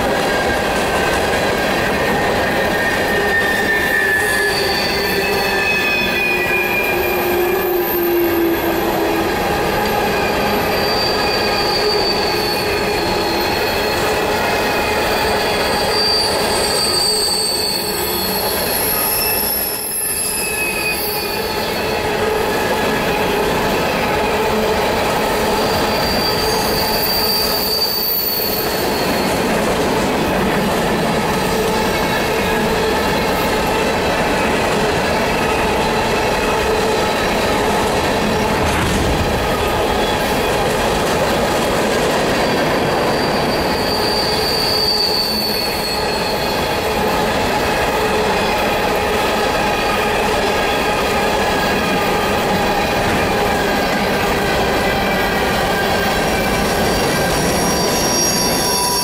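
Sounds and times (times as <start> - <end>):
train wheels rumbling on rail: 0.0 - 59.0
high wheel squeals: 2.0 - 23.9, 25.1 - 38.8, 42.3 - 47.4, 54.6 - 59.0.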